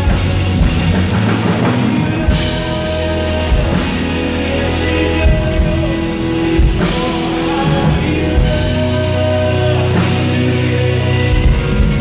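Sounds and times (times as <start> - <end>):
bass: 0.0 - 12.0
drum kit: 0.0 - 12.0
electric guitars: 0.0 - 12.0
keyboards: 0.0 - 12.0.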